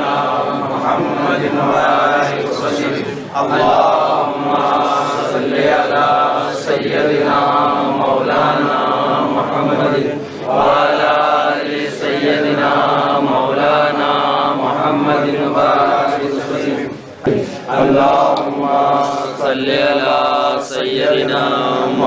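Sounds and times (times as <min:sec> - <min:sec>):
men chanting: 0:00.0 - 0:22.0.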